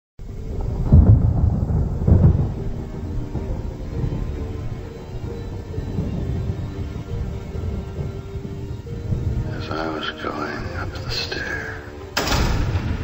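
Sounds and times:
deep rumbling booms: 0.2 - 13.0.

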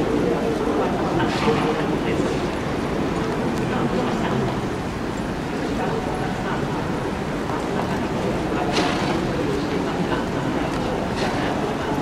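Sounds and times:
crowd murmuring and chattering: 0.0 - 12.0.

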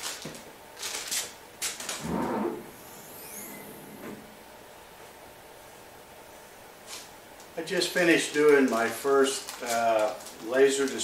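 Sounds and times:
high squeaky glides: 2.0 - 4.1.

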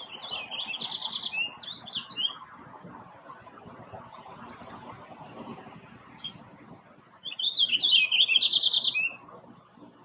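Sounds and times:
finch warbling song: 0.0 - 2.5, 6.1 - 6.5, 7.2 - 9.3.

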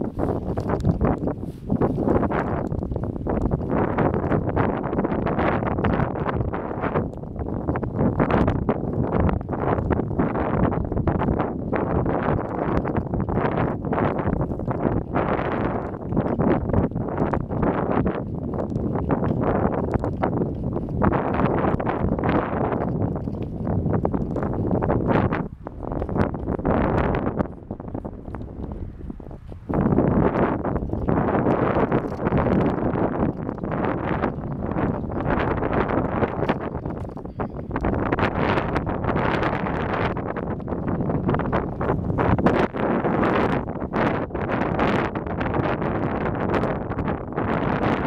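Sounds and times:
wind buffeting microphone: 0.0 - 48.0.

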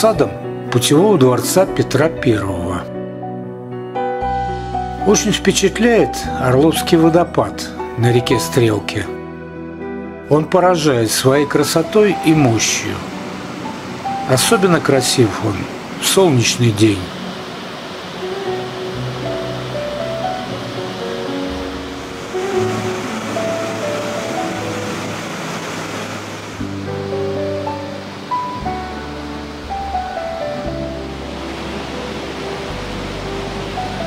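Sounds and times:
background music with sustained notes: 0.0 - 34.0
water rushing through a weir: 11.4 - 34.0.

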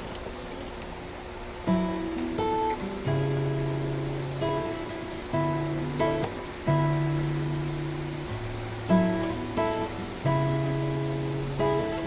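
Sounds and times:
acoustic guitar chords ringing: 1.6 - 12.0.

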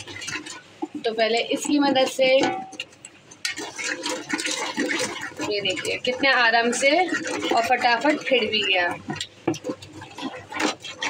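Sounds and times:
wooden churner whisking batter: 0.0 - 11.0.

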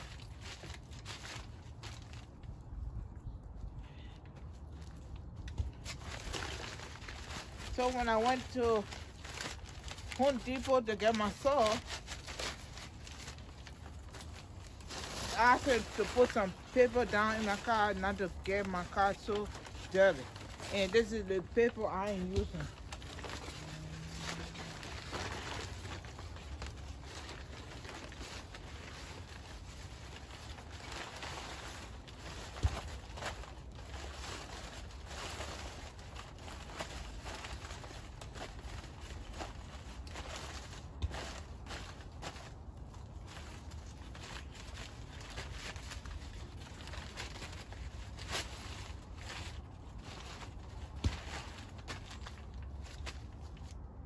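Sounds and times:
paper crinkling and rustling: 0.0 - 2.8, 4.5 - 54.0.

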